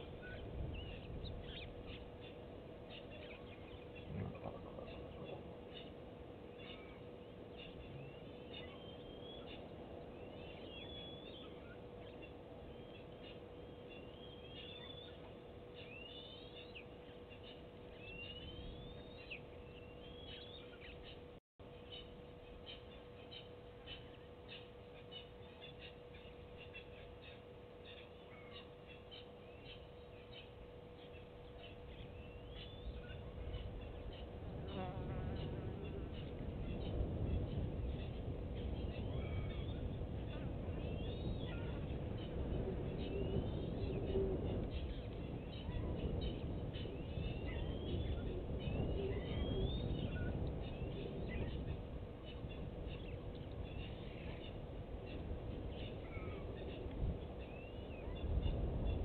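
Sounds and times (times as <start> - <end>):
small birds calling: 0.0 - 59.0
steady faint hum: 0.0 - 59.0.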